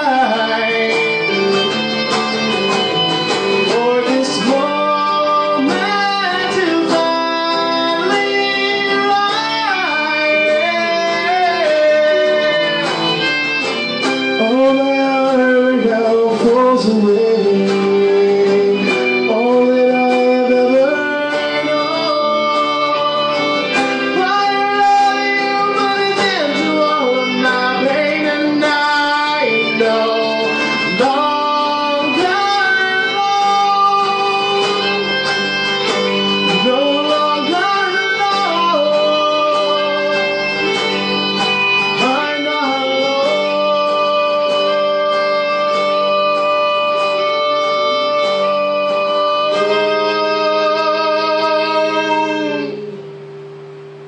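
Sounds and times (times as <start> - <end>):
man singing: 0.0 - 53.2
acoustic-electric guitar strummed: 0.0 - 54.0.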